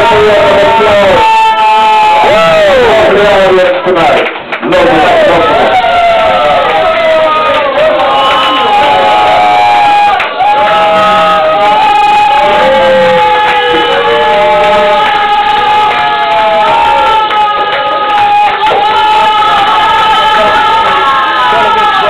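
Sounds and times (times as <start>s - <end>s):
crowd cheering and singing along: 0.0s - 22.0s.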